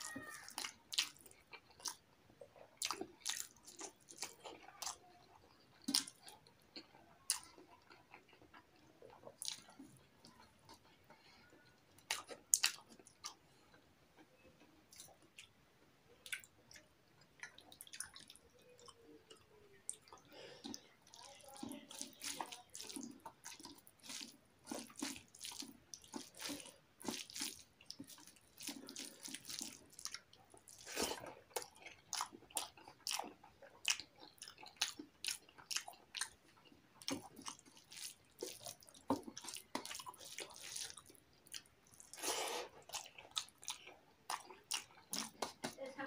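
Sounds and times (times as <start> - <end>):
wet eating and chewing: 0.0 - 46.0.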